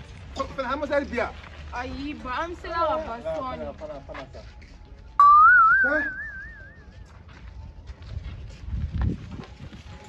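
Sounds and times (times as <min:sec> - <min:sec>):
warbling whistle: 0:05.2 - 0:06.8.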